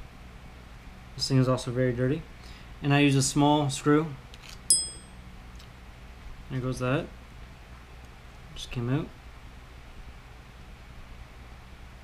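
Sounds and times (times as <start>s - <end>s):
metal screw pinging: 4.7s - 5.2s.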